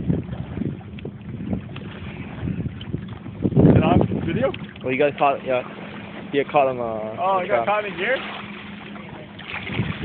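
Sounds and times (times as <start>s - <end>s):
wind rumbling on microphone: 0.0s - 6.6s, 9.0s - 10.0s.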